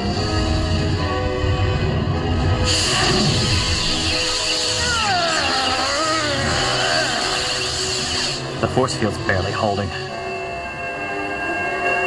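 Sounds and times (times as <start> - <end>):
dramatic music score: 0.0 - 12.0
crackling electrical rush: 1.7 - 9.0.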